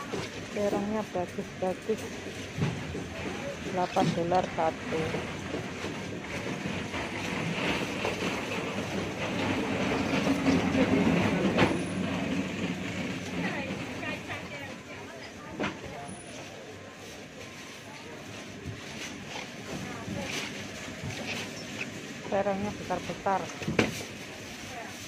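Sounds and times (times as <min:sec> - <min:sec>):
indistinct market voices: 0:00.0 - 0:25.0.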